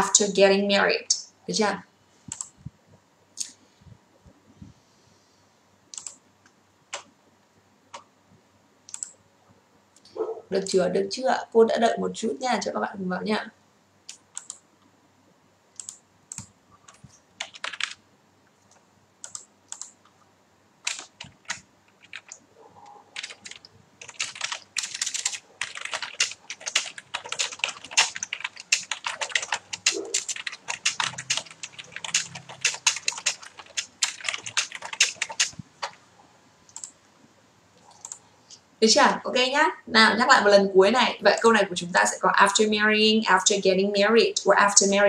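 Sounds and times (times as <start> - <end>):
computer keyboard typing: 2.3 - 2.6, 5.9 - 6.2, 8.9 - 9.2, 14.1 - 14.6, 15.8 - 18.0, 18.6 - 20.2, 20.8 - 22.4, 23.2 - 36.0, 36.7 - 37.0, 37.8 - 38.2.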